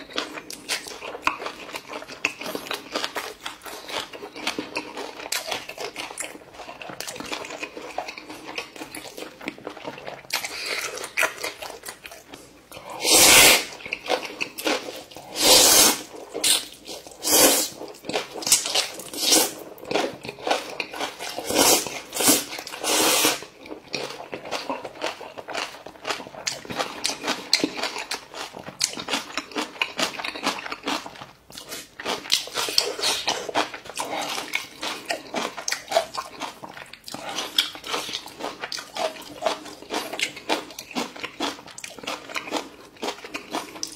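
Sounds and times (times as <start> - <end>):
person chewing: 0.0 - 43.9
person slurping noodles: 12.8 - 13.8, 15.2 - 17.8, 19.0 - 19.6, 21.2 - 23.5.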